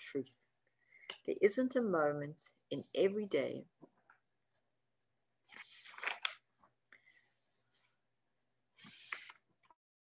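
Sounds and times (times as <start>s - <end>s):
paper page turning: 5.5s - 6.5s, 8.8s - 9.8s.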